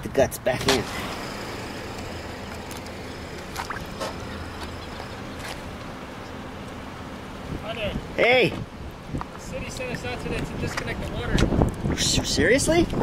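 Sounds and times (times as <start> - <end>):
water gushing into a hole: 0.8 - 4.0.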